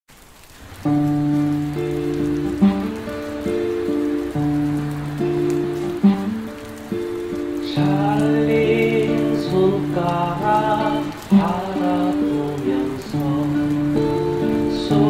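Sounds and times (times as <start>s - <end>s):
fingerpicked acoustic guitar: 0.8s - 15.0s.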